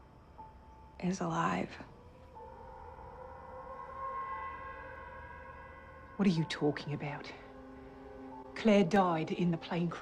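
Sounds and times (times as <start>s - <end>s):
dramatic held chord underscore: 0.0s - 10.0s.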